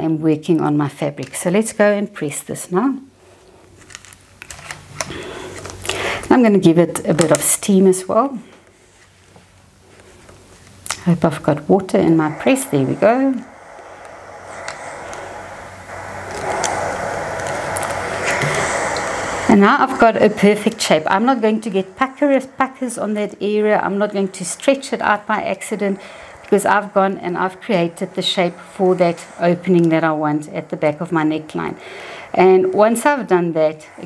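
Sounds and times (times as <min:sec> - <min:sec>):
steam iron hissing: 0:01.3 - 0:34.0.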